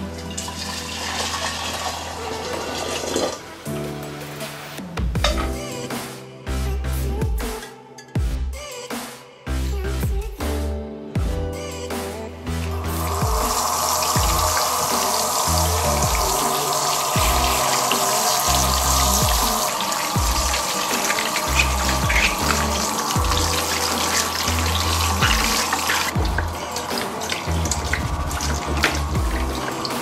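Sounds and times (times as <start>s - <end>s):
tap water running into bowl: 0.0s - 3.4s, 13.1s - 30.0s
music with rhythmic bass beat: 3.7s - 16.6s, 17.2s - 17.8s, 18.5s - 19.6s, 20.2s - 30.0s
hands washing fruit: 13.0s - 30.0s.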